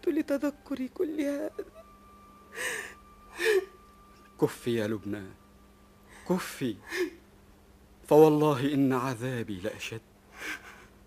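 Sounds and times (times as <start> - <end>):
woman gasping: 2.5 - 3.7
woman sobbing breaths: 2.5 - 3.8, 6.8 - 7.2, 10.3 - 11.0.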